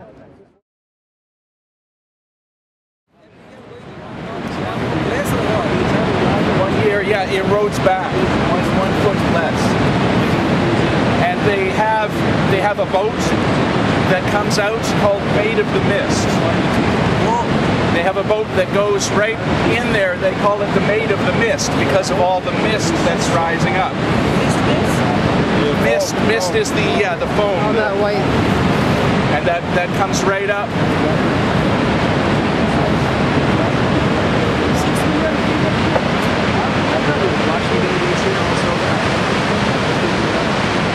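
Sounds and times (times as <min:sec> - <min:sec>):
people talking: 0:00.0 - 0:00.6, 0:03.2 - 0:31.4, 0:32.4 - 0:40.9
waterfall roaring: 0:03.7 - 0:40.9.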